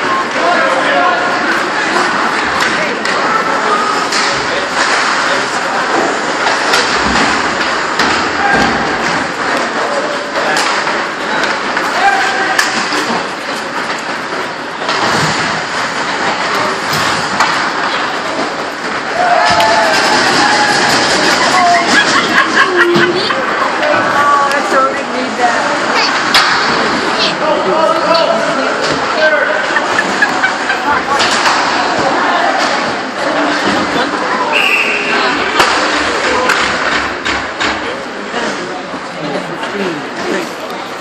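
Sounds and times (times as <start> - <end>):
spectators' voices and calls: 0.0 - 41.0
hockey sticks and puck knocks: 26.2 - 27.0, 31.1 - 33.9, 35.5 - 37.8.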